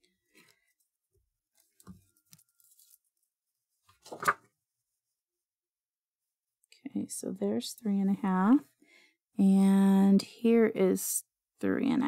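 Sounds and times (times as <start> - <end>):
paper rustling: 1.5 - 4.5.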